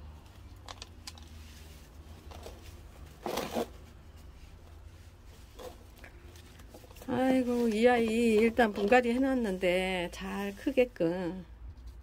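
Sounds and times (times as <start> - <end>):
hands rustling plant: 0.0 - 12.0
low room hum: 0.0 - 12.0.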